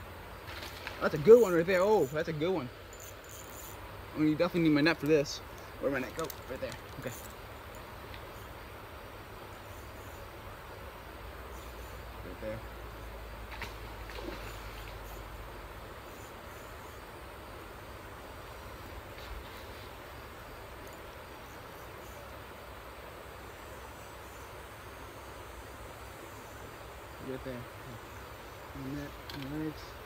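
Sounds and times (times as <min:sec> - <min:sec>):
insects buzzing faintly: 0:00.0 - 0:30.0.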